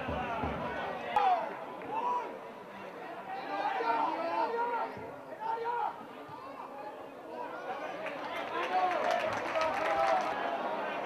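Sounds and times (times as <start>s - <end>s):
players and spectators shouting: 0.0s - 6.7s.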